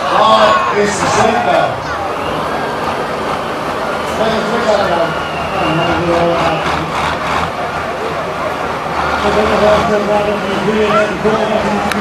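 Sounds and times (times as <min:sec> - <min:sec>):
truck engine running: 0:00.0 - 0:12.0.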